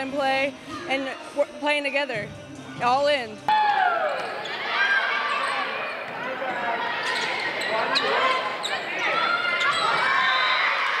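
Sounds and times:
people calling and shouting: 0.0 - 11.0.

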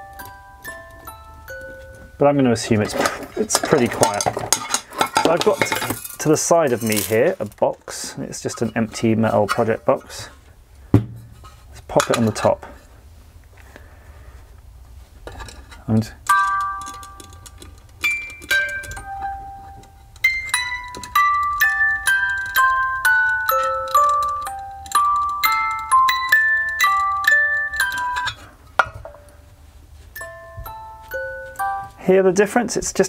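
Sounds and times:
music box playing a tune: 0.0 - 2.5, 16.2 - 32.0
music box mechanism clicks: 16.2 - 28.4.

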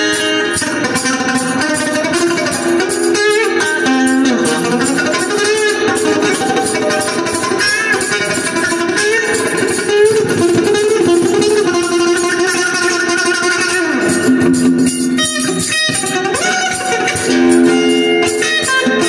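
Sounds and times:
electric guitar sustained notes: 0.0 - 19.0.

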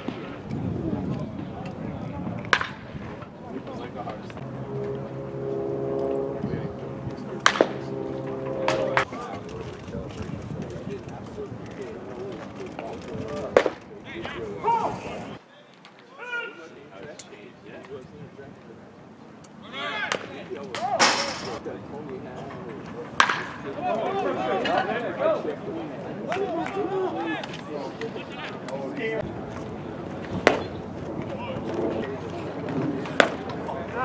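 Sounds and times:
men chatting: 1.0 - 34.0
baseball hitting glove crack: 30.4 - 30.7.

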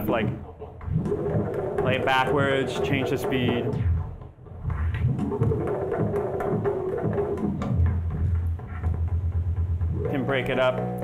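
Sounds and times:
fast low pulsing: 0.0 - 11.0.

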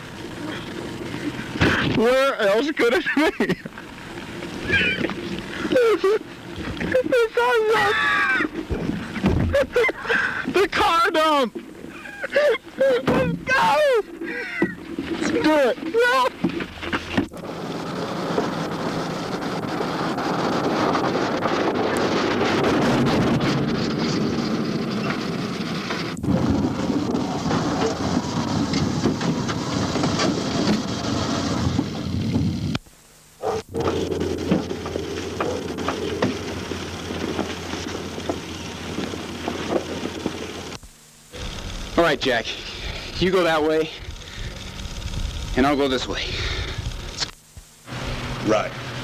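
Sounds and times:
car rumbling on a dirt road: 0.0 - 32.8, 33.4 - 49.0.

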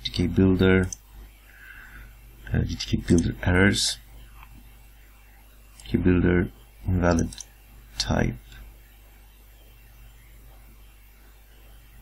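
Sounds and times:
man speaking: 0.0 - 1.0, 2.5 - 4.1, 5.8 - 7.4, 8.0 - 8.6
low steady hum: 0.0 - 12.0.

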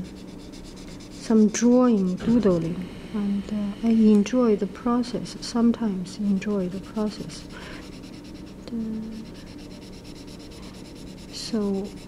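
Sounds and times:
marker rubbing on paper: 0.0 - 2.6, 6.5 - 12.0.

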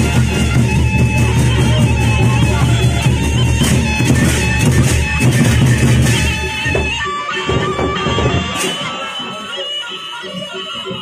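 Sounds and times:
barrel drums: 0.0 - 11.0
cymbals: 0.0 - 11.0.

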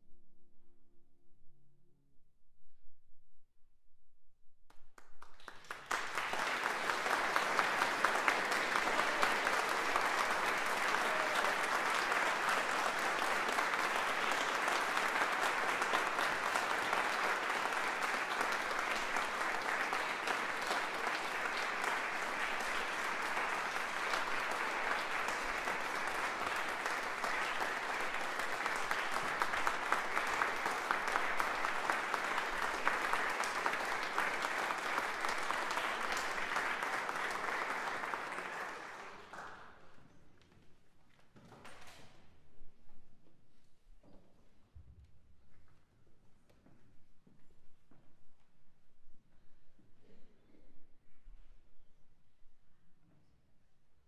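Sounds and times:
audience applause: 5.2 - 40.0.

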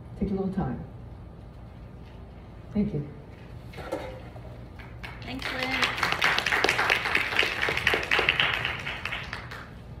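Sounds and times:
audience applauding: 4.8 - 9.8.

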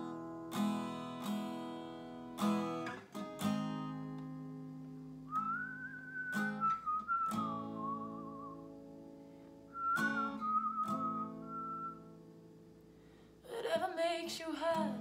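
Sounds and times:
acoustic guitar chords: 0.0 - 15.0
whistled melody: 5.3 - 8.7, 9.7 - 12.2.

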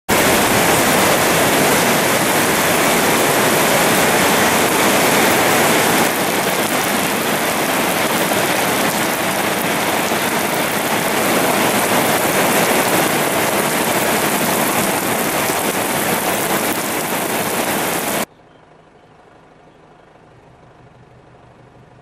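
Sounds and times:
heavy rain falling: 0.1 - 18.3.

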